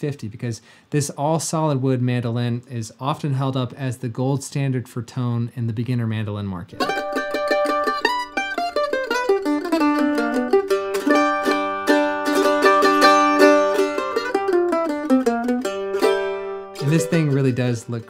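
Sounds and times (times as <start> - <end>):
mandolin picked melody: 6.8 - 18.0.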